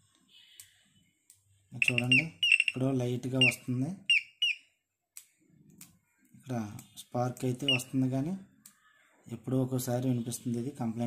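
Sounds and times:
small bird chirping: 0:01.8 - 0:04.7.

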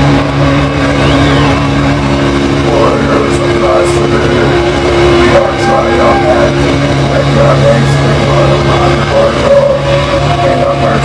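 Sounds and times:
distorted guitars and bass: 0:00.0 - 0:11.0.

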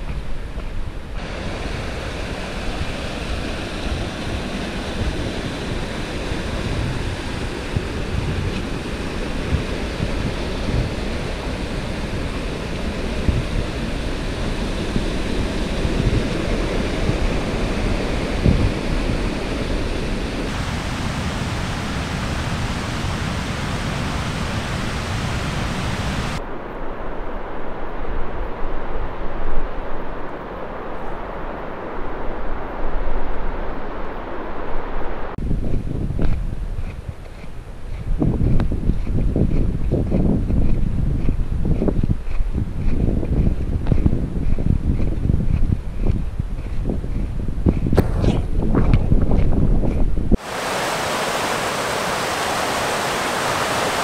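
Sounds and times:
wind buffeting microphone: 0:00.0 - 0:54.0
creek rushing: 0:01.1 - 0:35.4, 0:50.3 - 0:54.0.

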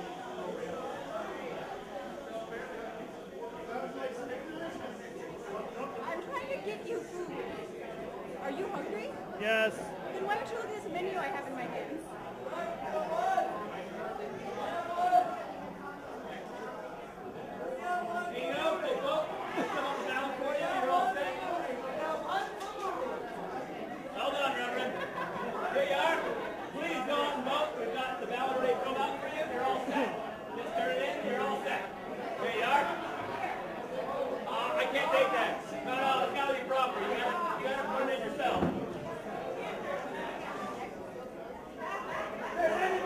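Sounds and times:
crowd chatter: 0:00.0 - 0:43.0
laughter: 0:24.7 - 0:25.8.

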